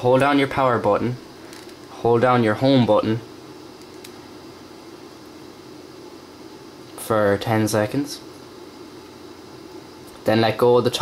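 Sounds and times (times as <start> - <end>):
faint low hum: 0.0 - 11.0.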